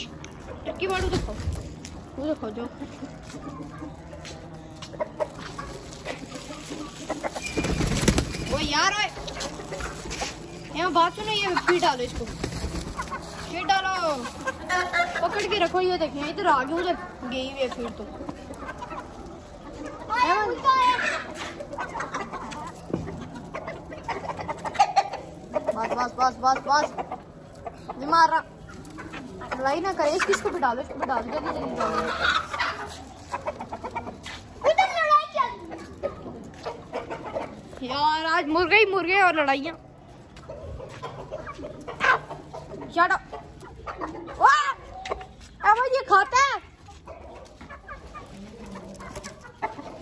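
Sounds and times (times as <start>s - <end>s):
chickens clucking: 0.0s - 50.0s.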